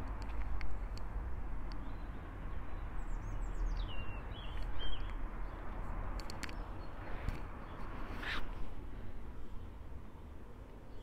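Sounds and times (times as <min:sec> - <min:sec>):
songbird chirping: 0:01.7 - 0:07.9.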